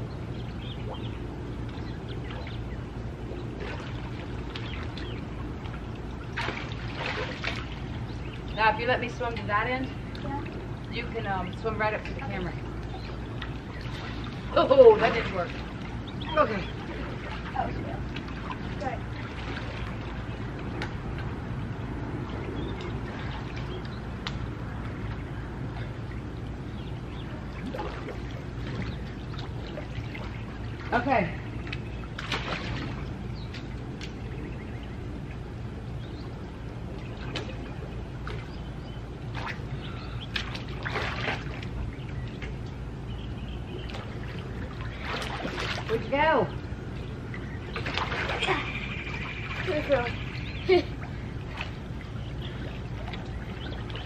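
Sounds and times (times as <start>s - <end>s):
distant voices calling: 0.0s - 54.0s
pool water sloshing: 0.0s - 54.0s
steady low hum: 0.0s - 54.0s.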